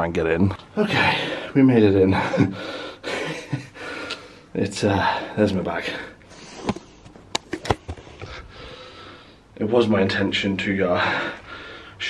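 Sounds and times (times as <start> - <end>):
man breathing hard: 2.5 - 5.4, 8.2 - 9.5, 11.0 - 12.0.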